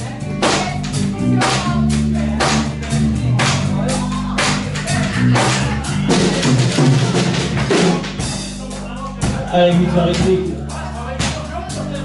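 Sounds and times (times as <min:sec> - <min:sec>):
live rock band playing: 0:00.0 - 0:12.0
bass drum and snare hits: 0:00.3 - 0:08.6.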